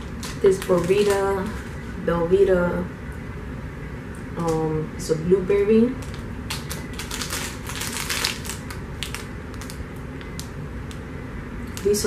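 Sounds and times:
plastic wrapper crinkling: 0.0s - 1.8s, 6.0s - 11.0s, 11.6s - 12.0s.

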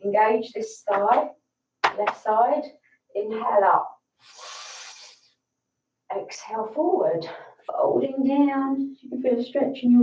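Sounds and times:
woman inhaling through the nose: 4.2s - 5.4s.

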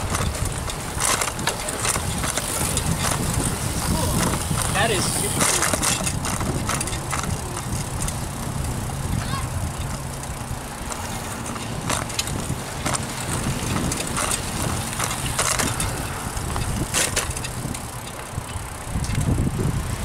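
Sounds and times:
bicycle rolling on concrete: 0.0s - 20.0s
sharp clicks and rattles: 0.0s - 20.0s.

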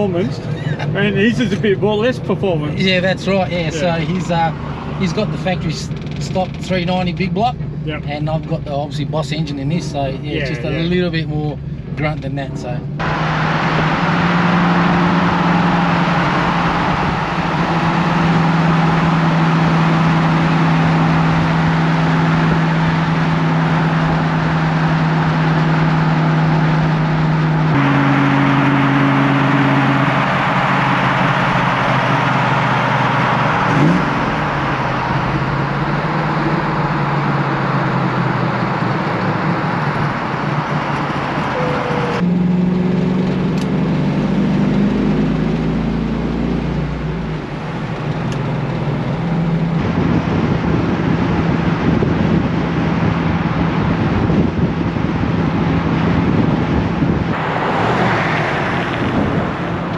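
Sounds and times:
car engine drone: 0.0s - 59.9s
tyre road noise: 0.0s - 59.9s
wind noise: 47.2s - 59.9s.

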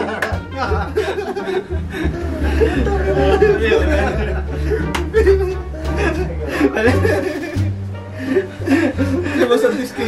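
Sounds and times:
background music with bass: 0.0s - 10.0s
men laughing: 0.0s - 10.0s.

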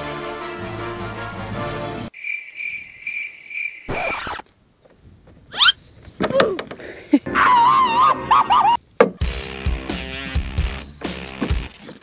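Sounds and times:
background music: 0.0s - 2.1s, 7.3s - 11.7s
crickets chirping: 2.1s - 7.2s.

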